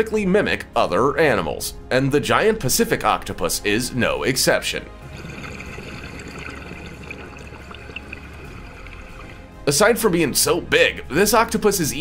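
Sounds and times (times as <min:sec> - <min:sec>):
water trickling and bubbling: 0:05.0 - 0:09.6.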